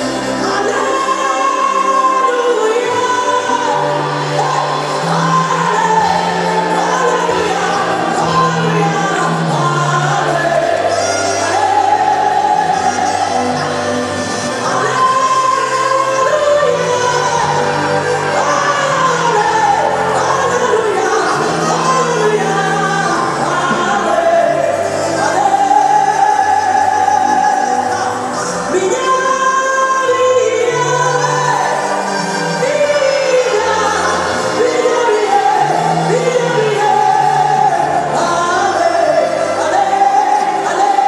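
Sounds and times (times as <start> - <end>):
band playing: 0.0 - 41.0
woman singing gospel: 0.0 - 41.0.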